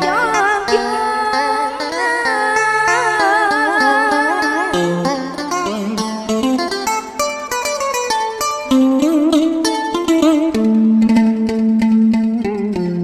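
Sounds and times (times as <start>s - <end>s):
plucked string melody with bent notes: 0.0s - 13.0s.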